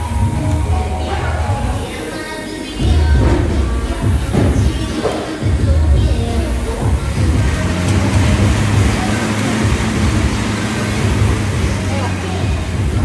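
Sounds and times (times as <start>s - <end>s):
exercise bike fan whooshing: 0.0s - 13.0s.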